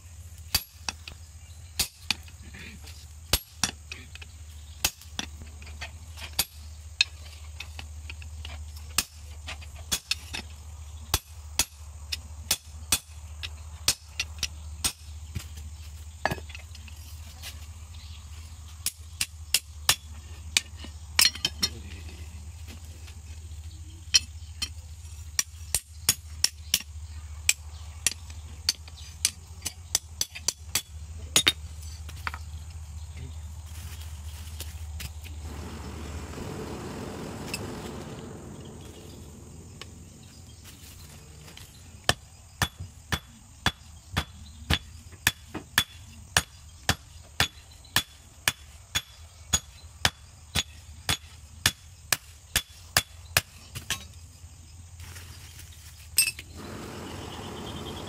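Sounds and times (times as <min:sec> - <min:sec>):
steady low hum: 0:35.3 - 0:42.1, 0:56.5 - 0:58.0.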